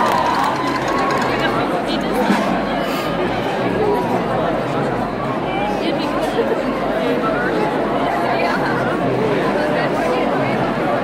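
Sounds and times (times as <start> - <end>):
crowd chattering in hall: 0.0 - 11.0.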